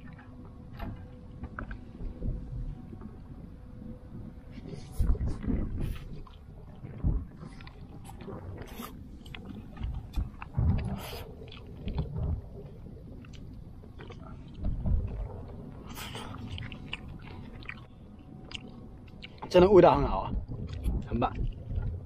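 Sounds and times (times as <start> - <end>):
low bumps: 0.0 - 18.4
person chewing: 15.9 - 17.9, 18.5 - 19.4.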